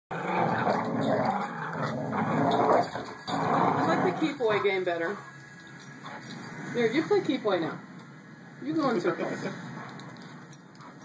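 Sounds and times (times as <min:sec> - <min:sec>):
dogs growling: 0:00.1 - 0:06.8.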